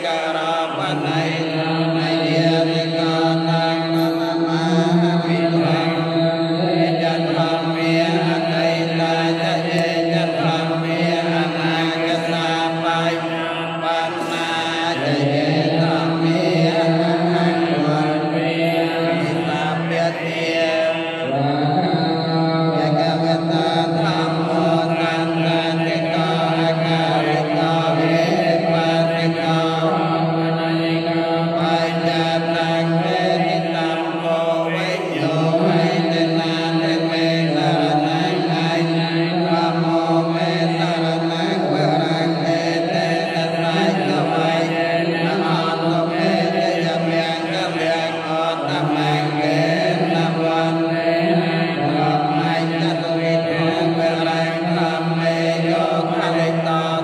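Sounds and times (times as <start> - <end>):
monks chanting in unison: 0.0 - 57.0.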